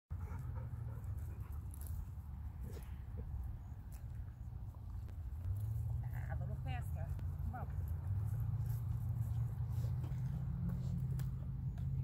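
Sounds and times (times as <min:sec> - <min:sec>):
dog panting: 0:00.1 - 0:02.0.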